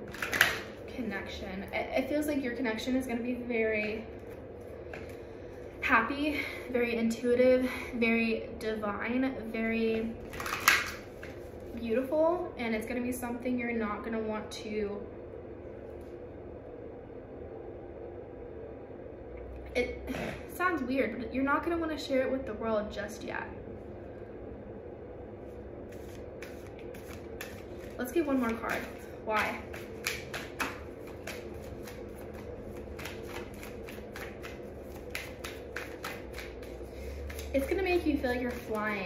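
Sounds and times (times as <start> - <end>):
faint background hum: 0.0 - 39.0
cards being shuffled: 0.1 - 0.8, 10.2 - 11.8, 25.9 - 39.0.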